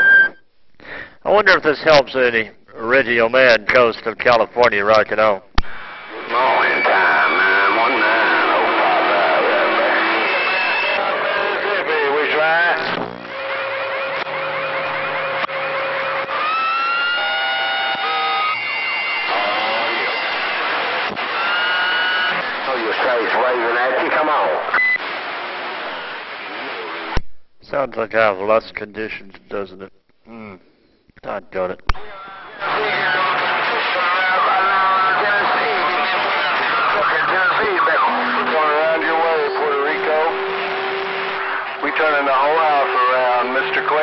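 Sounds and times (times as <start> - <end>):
garbled radio voices: 4.5 - 16.4, 17.9 - 27.2, 31.9 - 44.0
radio static: 5.6 - 27.2, 31.9 - 44.0
whistling heterodyne tones: 16.4 - 20.2.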